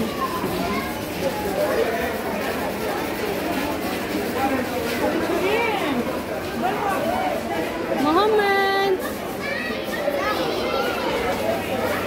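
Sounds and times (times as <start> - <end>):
children and adults chattering: 0.0 - 12.0.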